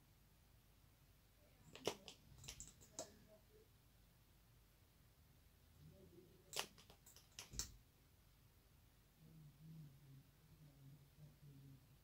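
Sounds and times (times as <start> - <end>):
soft sharp clicks: 1.7 - 3.2, 6.5 - 7.8.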